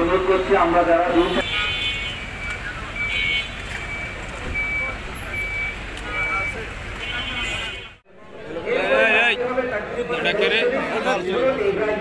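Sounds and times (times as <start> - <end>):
reversing alarm beeping: 2.2 - 6.7.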